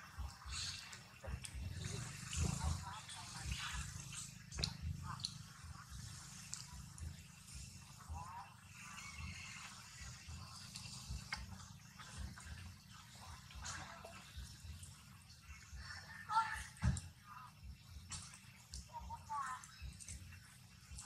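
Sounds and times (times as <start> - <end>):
distant indistinct voices: 0.0 - 21.0.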